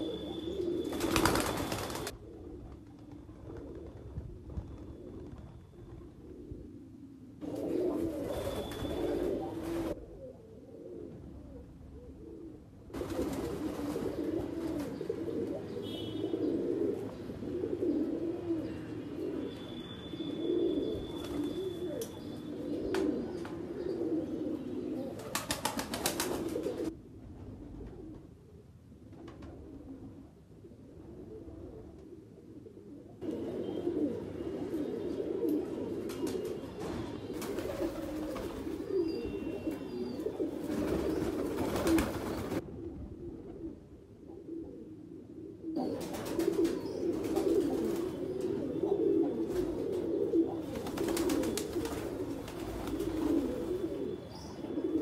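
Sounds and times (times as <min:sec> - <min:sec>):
pigeons cooing: 0:00.0 - 0:04.3, 0:04.9 - 0:28.3, 0:29.5 - 0:55.0
wings flapping: 0:00.9 - 0:04.1, 0:13.0 - 0:14.9, 0:25.2 - 0:26.9, 0:40.6 - 0:42.6, 0:50.7 - 0:53.6.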